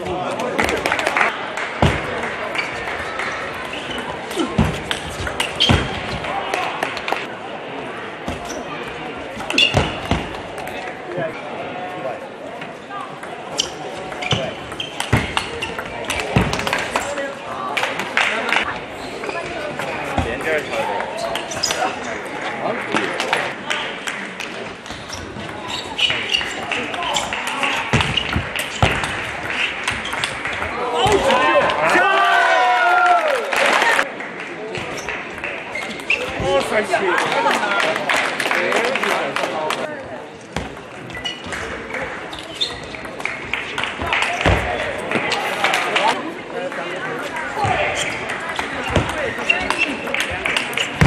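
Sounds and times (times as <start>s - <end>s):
voices in a hall: 0.0s - 51.0s
loud shouting: 30.7s - 34.0s.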